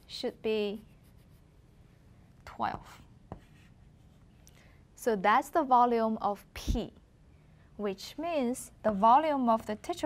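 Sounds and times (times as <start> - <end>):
chalk scratching on blackboard: 0.1 - 1.5, 2.8 - 4.3
chalk tapping on blackboard: 3.3 - 3.7.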